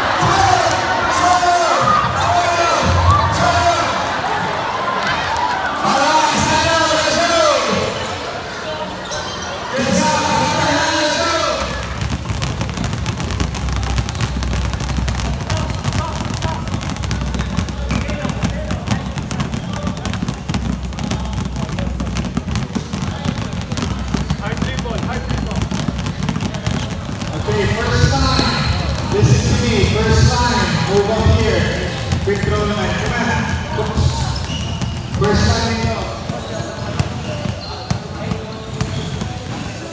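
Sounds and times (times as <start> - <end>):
basketballs bouncing on gym floor: 0.0 - 5.6, 9.0 - 39.9
voices: 0.0 - 39.9.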